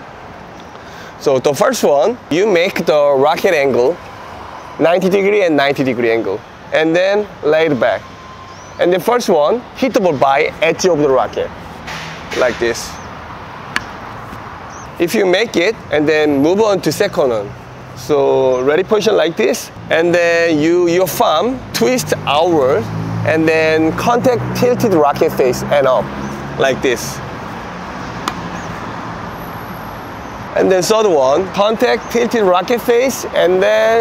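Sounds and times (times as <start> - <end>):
traffic hum: 0.0 - 34.0
racket hitting tennis ball: 28.2 - 28.6.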